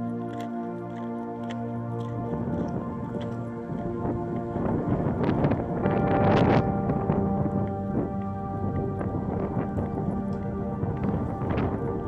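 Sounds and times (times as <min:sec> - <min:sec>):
soft music with held notes: 0:00.0 - 0:12.0
wind buffeting microphone: 0:00.0 - 0:12.0.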